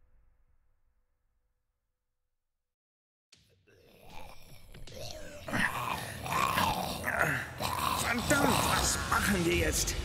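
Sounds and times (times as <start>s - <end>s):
guttural zombie growls: 3.5s - 9.6s.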